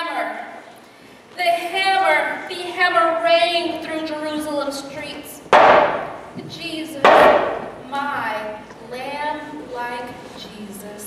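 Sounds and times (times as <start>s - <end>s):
hammer blow ringing: 5.6s - 6.3s, 7.0s - 7.7s.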